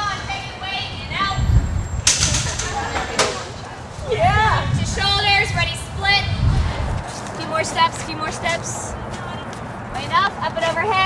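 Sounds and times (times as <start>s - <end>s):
faint voices: 2.0s - 11.0s.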